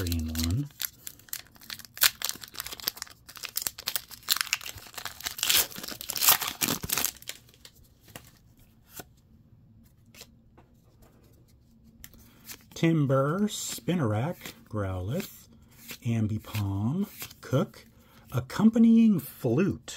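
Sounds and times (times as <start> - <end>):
foil wrapper tearing and crinkling: 0.0 - 7.6.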